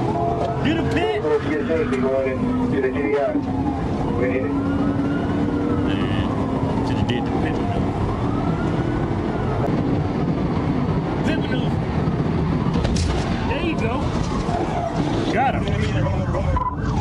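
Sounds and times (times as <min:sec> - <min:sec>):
siren wailing: 0:00.0 - 0:12.7, 0:13.6 - 0:17.0
engine and road noise: 0:00.0 - 0:17.0.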